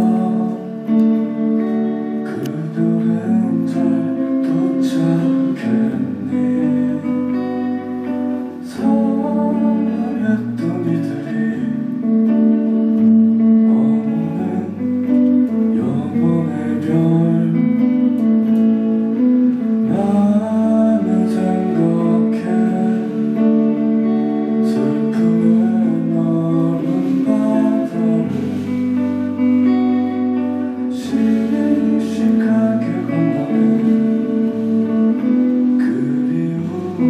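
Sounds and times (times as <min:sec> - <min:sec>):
electric guitar chords: 0:00.0 - 0:37.0
man singing: 0:00.0 - 0:37.0.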